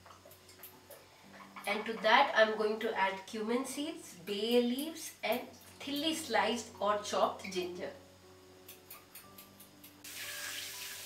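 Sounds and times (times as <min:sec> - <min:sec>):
faint background music: 0:00.0 - 0:11.0
spices sizzling in hot oil: 0:08.6 - 0:11.0.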